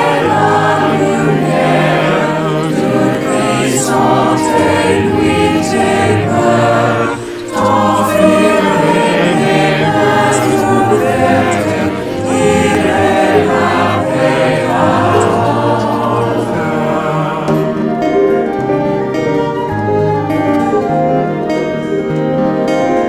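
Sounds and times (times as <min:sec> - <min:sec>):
choir singing a hymn: 0:00.0 - 0:23.0
instrumental accompaniment: 0:00.0 - 0:23.0.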